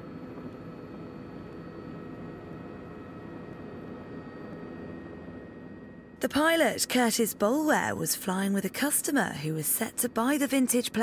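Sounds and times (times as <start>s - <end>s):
faint steady tones: 0.1s - 11.0s.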